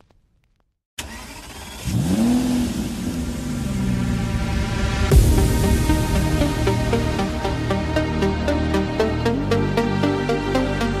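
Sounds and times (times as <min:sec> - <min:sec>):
car engine revving: 0:01.0 - 0:09.1
bass-boosted electronic music: 0:04.1 - 0:11.0
rush of noise: 0:04.2 - 0:08.4.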